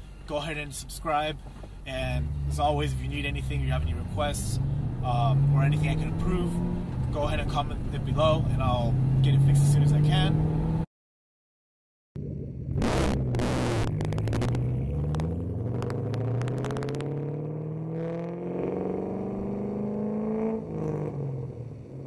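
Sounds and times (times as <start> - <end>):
car engine accelerating: 1.9 - 10.9, 12.2 - 22.0
harsh noise bursts: 12.8 - 14.6.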